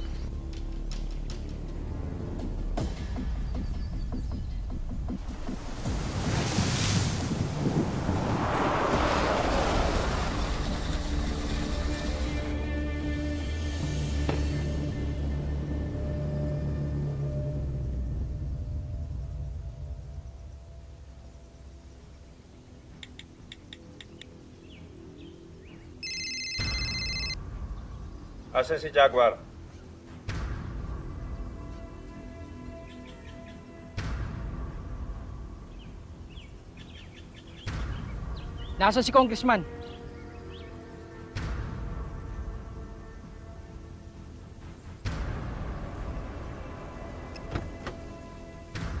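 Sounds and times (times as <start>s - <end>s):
dramatic music: 0.0s - 20.0s, 26.6s - 49.0s
car driving past on dirt road: 5.3s - 12.9s
phone ring tone: 26.0s - 27.4s.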